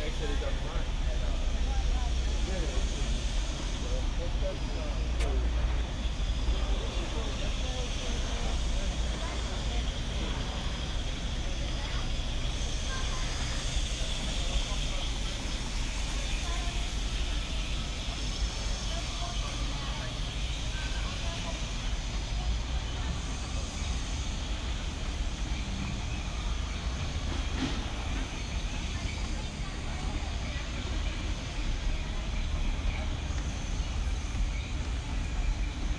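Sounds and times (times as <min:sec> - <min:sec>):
indistinct chatter of people: 0:00.0 - 0:35.9.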